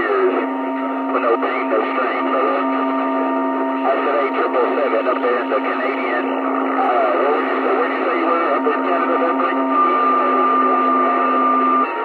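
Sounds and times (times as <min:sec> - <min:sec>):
faint garbled radio voices: 0:00.0 - 0:12.0
radio static hiss: 0:00.0 - 0:12.0
radio whistling tones: 0:03.8 - 0:12.0.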